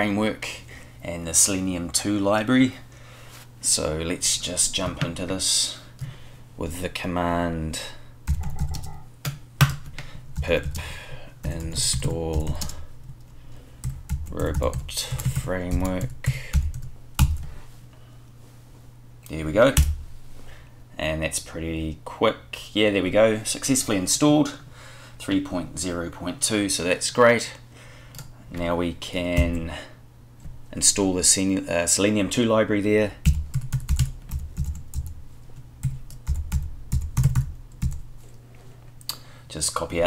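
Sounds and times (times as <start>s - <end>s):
faint low hum: 0.0s - 40.0s
keyboard typing clicks: 8.3s - 9.0s.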